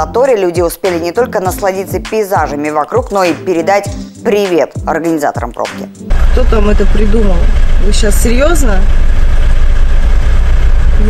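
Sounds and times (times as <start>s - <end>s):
car engine idling: 6.1s - 11.0s.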